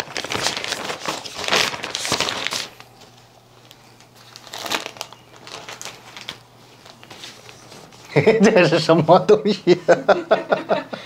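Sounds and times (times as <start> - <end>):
plastic bag crinkling: 0.0 - 8.1.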